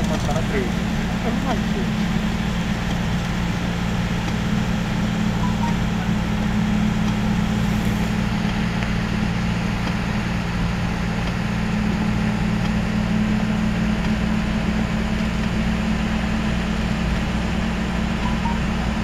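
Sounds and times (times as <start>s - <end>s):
vehicle engine and road noise: 0.0s - 19.0s.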